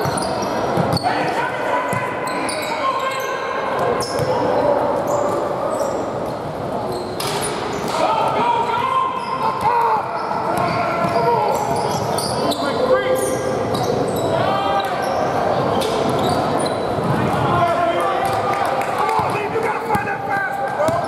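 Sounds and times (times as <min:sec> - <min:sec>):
people shouting in a gym: 0:00.0 - 0:06.2, 0:07.8 - 0:21.0.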